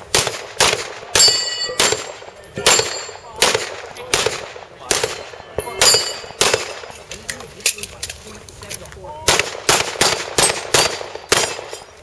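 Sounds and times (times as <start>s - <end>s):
pistol shots: 0.0s - 7.0s, 9.2s - 12.0s
steel plate ringing clang: 1.2s - 3.3s, 5.1s - 6.4s.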